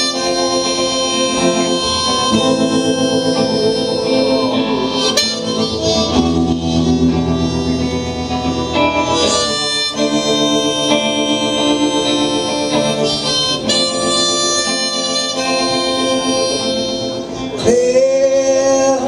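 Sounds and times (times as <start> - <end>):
guitar: 0.0 - 19.0
harmonica chords: 0.0 - 19.0.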